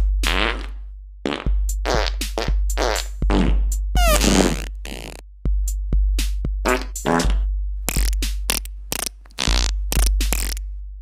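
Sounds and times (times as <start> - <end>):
fart sounds: 0.3 - 0.7, 1.3 - 5.2, 6.7 - 10.6
hip-hop beat with deep bass: 1.8 - 4.6.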